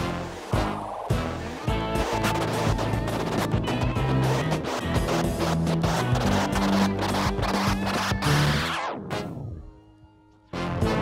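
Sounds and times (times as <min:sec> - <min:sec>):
record scratching: 0:00.0 - 0:09.4
beat-driven music: 0:00.0 - 0:11.0.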